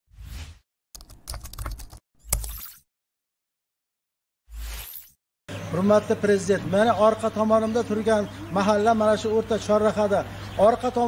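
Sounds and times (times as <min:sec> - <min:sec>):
computer keyboard typing: 0:01.0 - 0:02.6.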